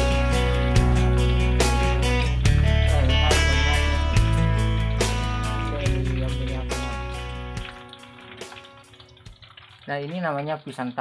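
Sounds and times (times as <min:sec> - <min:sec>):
sharp crackles of oil: 0:00.0 - 0:11.0.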